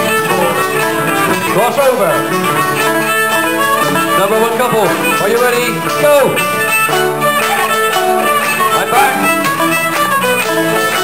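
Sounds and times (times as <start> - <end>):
fiddles playing melody: 0.0 - 11.0
folk band playing dance tune: 0.0 - 11.0.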